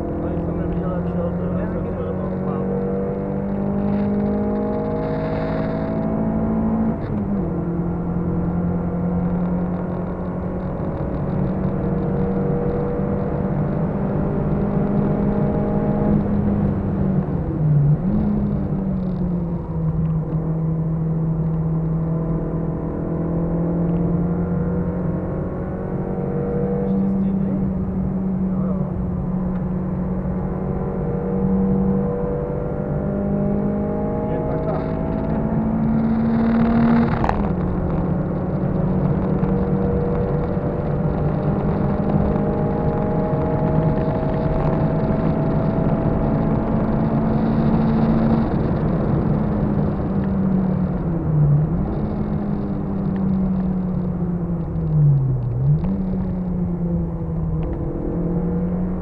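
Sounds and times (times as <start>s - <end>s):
car engine revving through gears: 0.0s - 59.0s
tyre and road noise: 0.0s - 59.0s.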